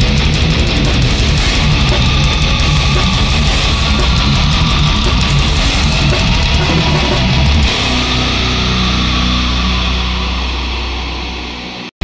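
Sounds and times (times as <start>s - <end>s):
distorted electric guitar and bass chord: 0.0s - 12.0s.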